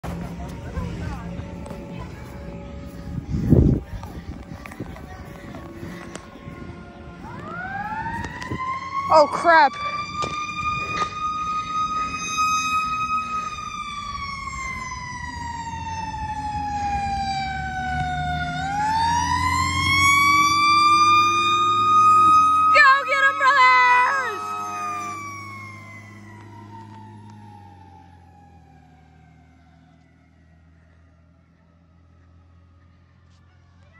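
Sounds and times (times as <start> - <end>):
background traffic noise: 0.0 - 33.9
fire engine siren wailing: 0.0 - 33.9.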